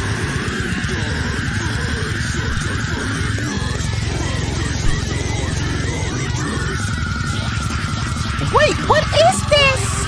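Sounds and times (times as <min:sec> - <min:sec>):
metal song with distorted guitars: 0:00.0 - 0:10.0.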